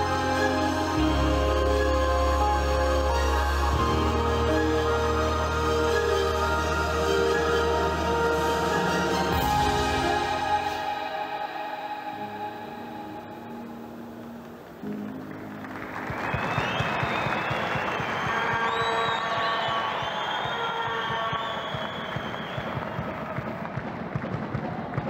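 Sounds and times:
slow music with held notes: 0.0 - 16.5
crowd applause and cheering: 0.0 - 25.0.

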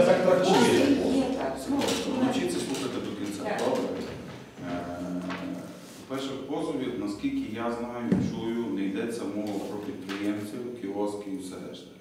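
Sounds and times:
man speaking: 0.0 - 1.1, 2.1 - 12.0.

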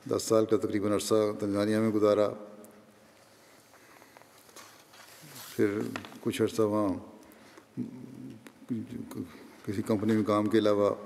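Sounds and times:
man speaking: 5.2 - 7.2, 7.8 - 11.0.

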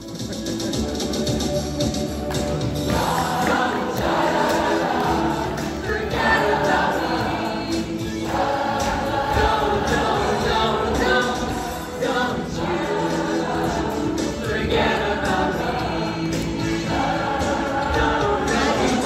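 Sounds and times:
lead singers on microphones: 2.9 - 19.0
teenagers singing in chorus: 2.9 - 19.0.

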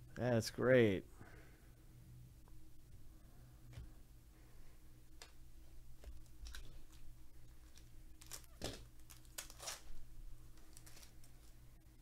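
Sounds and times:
low electrical hum: 0.0 - 12.0
foil wrapper crinkling: 6.2 - 11.6.

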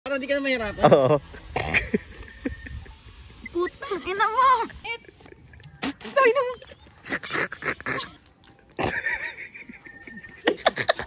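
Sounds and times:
people joking and laughing: 0.8 - 11.0.

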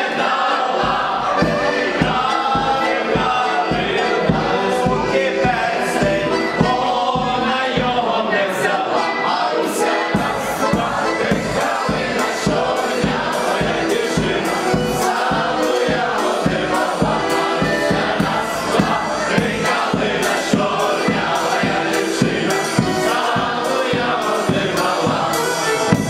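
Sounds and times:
accordion: 0.0 - 26.0
many voices singing: 0.0 - 26.0
bass drum and cymbal beat: 10.2 - 26.0.

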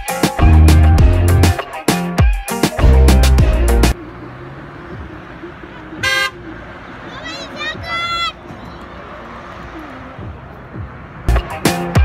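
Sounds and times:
cars driving past: 3.4 - 12.0
car horns tooting: 5.8 - 9.1.

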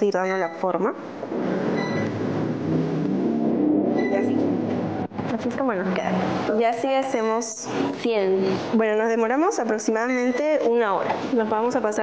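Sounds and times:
machinery rumble with low hum: 0.5 - 7.0.

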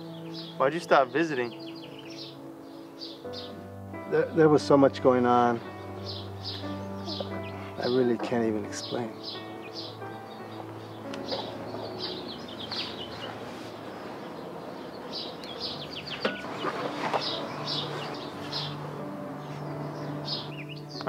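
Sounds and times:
background music: 0.0 - 21.0
birds chirping: 0.0 - 21.0.

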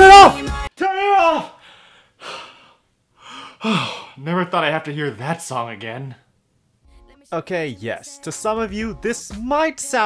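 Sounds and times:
man sighing: 1.4 - 4.2
man breathing out heavily: 1.6 - 4.2.

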